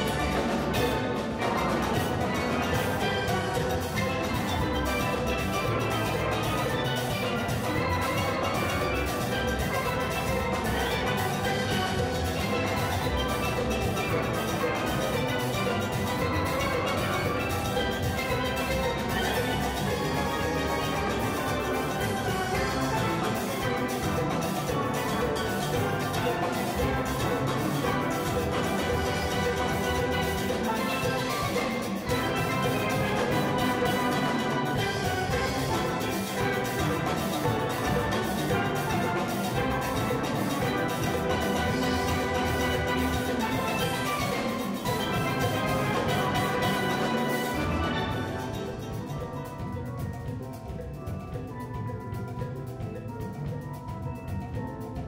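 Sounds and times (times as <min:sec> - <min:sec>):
drums: 0:00.0 - 0:55.0
steel band playing: 0:00.0 - 0:55.0.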